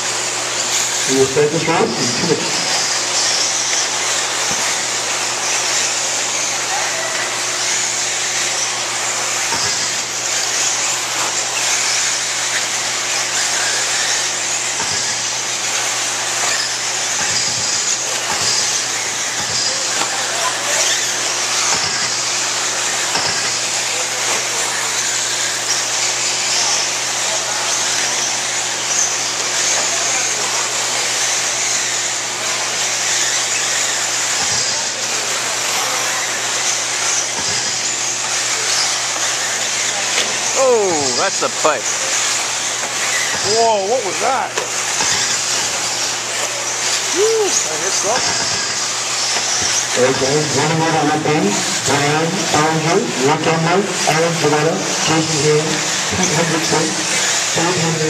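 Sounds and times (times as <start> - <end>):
high-pitched electric motor whine: 0.0 - 58.0.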